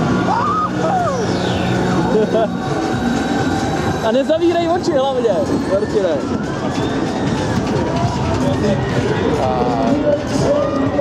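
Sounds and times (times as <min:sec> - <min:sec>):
ride gondola rushing noise: 0:00.0 - 0:11.0.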